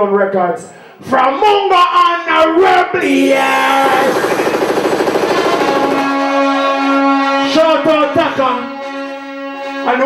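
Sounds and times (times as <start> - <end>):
rapid rattling pitched pulse: 3.4 - 6.5.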